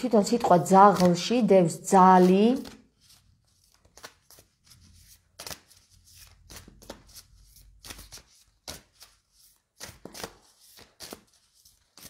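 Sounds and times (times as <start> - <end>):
cards shuffling: 0.2 - 12.0.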